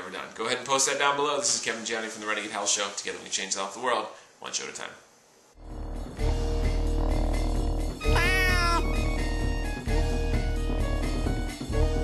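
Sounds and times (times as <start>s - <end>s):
theme music: 5.8s - 10.5s
cat meow: 8.0s - 8.9s.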